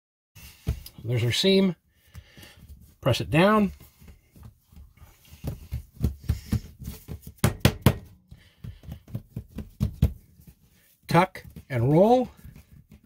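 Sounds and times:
hands patting dough on wood: 2.0s - 13.0s
soft knocks and thuds: 3.8s - 10.6s.

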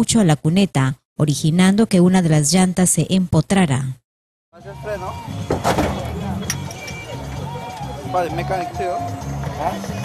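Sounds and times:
background music: 4.6s - 10.0s.

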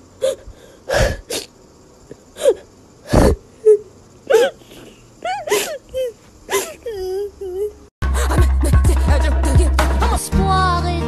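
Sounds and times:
person huffing: 0.2s - 1.5s.

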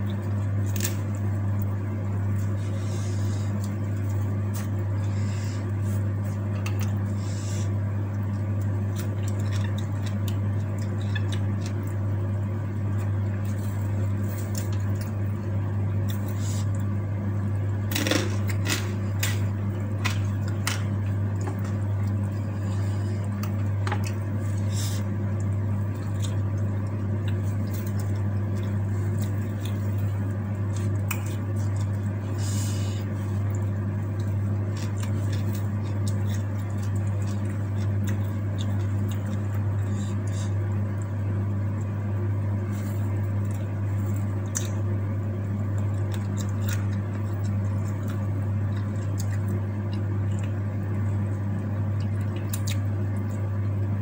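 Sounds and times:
steady low hum: 0.0s - 54.0s
chewing and mouth clicks: 8.1s - 12.0s, 23.2s - 32.2s, 33.3s - 42.0s, 42.7s - 45.0s, 45.6s - 51.0s, 51.9s - 53.5s.

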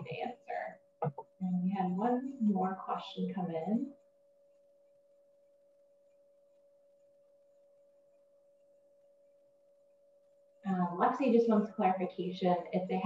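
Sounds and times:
faint steady tone: 0.0s - 13.0s.

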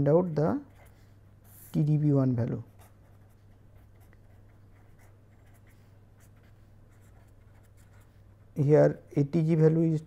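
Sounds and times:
steady low hum: 0.0s - 10.0s
pen scratching on paper: 0.6s - 1.7s, 2.6s - 8.6s.

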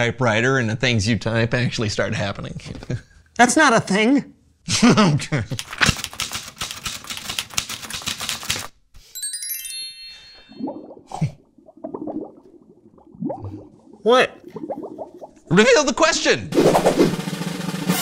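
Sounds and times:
typewriter keys clacking: 5.6s - 8.7s
bright tinkling chime: 9.0s - 10.8s.

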